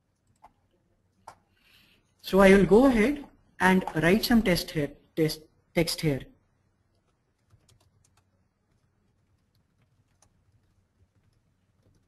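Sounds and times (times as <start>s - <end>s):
keyboard typing: 0.0s - 1.5s, 6.9s - 12.0s.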